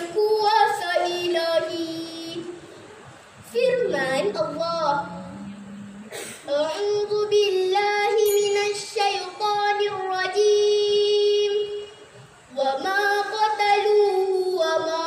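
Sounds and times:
girl singing: 0.0 - 2.7, 3.4 - 5.4, 6.4 - 15.0.

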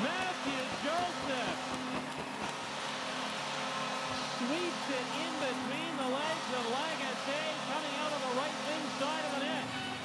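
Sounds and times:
arena crowd cheering: 0.0 - 2.0.

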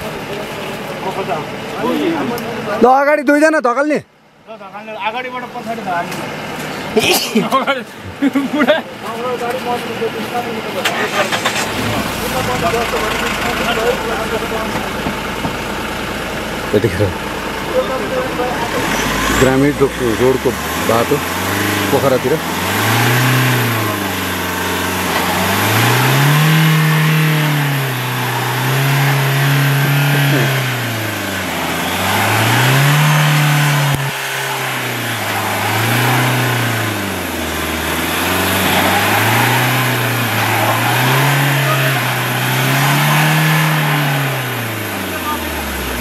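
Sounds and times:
engine revving: 10.7 - 46.0.

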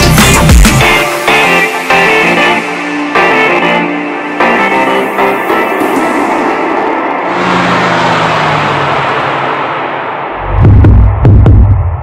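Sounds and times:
advert music: 0.0 - 12.0
sustained swell of noise: 5.2 - 10.8
low falling tone: 7.1 - 12.0.

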